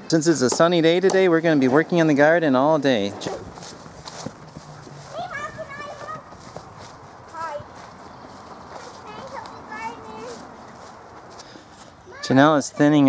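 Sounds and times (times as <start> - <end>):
children's voices: 4.9 - 10.6, 11.8 - 13.0.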